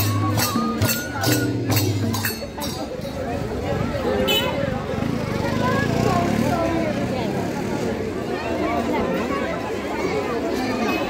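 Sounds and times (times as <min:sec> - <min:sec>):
crowd hubbub: 0:00.0 - 0:11.0.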